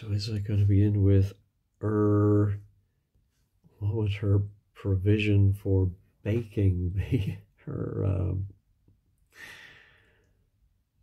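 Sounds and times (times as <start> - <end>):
person sighing: 9.3 - 10.3.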